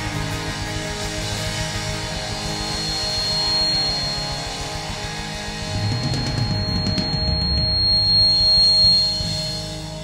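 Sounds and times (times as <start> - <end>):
rock band final chord: 0.0 - 10.0
thin steady high tone: 0.2 - 10.0.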